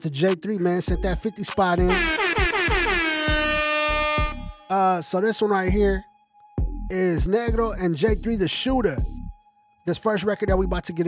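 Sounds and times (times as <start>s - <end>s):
buzzy horn blast sliding down: 1.8s - 4.6s.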